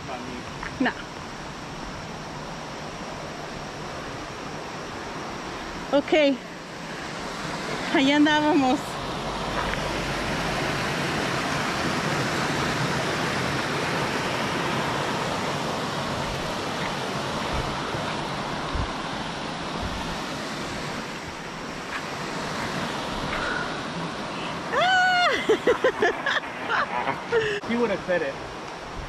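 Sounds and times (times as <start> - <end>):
stream rushing over boulders: 0.0 - 29.0.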